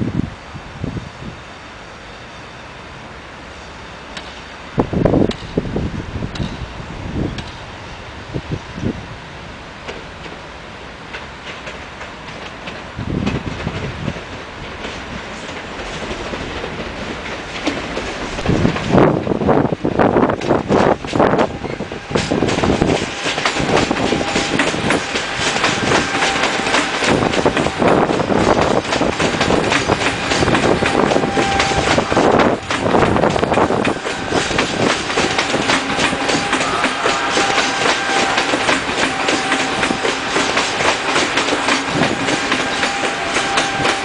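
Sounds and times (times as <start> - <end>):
train wheels clattering over rails: 4.1 - 7.7, 9.7 - 44.0.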